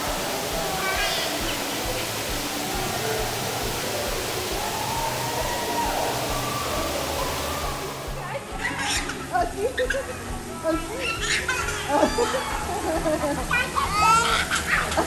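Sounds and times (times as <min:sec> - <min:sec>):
faint voices of swimmers: 0:00.0 - 0:15.0
water rushing in pool: 0:00.0 - 0:15.0.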